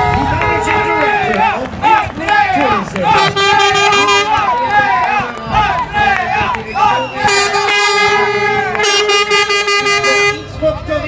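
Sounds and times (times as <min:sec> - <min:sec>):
horn blowing long note: 0:00.0 - 0:01.4, 0:03.1 - 0:04.5, 0:07.2 - 0:10.5.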